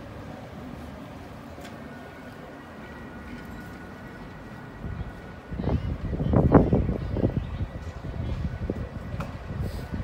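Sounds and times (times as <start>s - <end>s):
low traffic hum: 0.0s - 10.0s.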